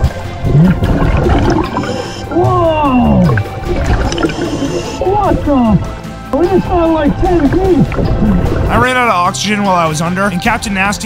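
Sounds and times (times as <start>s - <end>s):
underwater gurgling water: 0.0s - 5.9s, 7.1s - 9.0s
background music: 0.0s - 11.0s.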